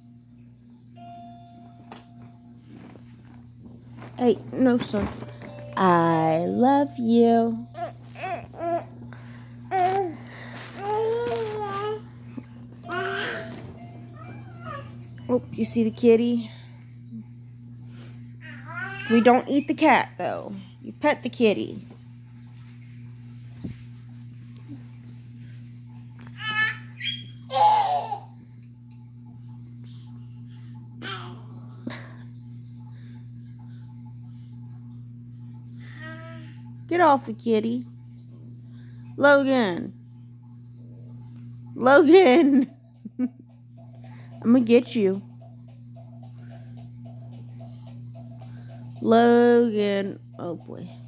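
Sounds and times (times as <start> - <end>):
low steady hum: 0.0 - 51.0.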